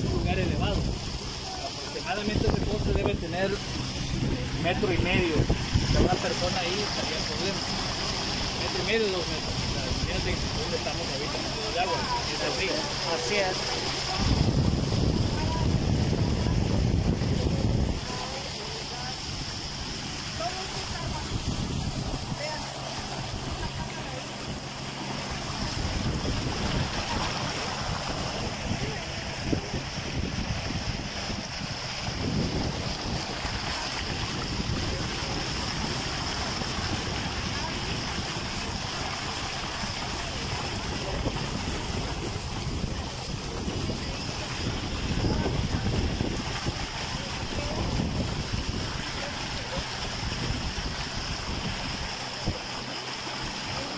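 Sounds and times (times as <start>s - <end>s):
boat motor running: 0.0s - 53.9s
water moving past hull: 0.0s - 53.9s
wind buffeting microphone: 0.0s - 53.9s.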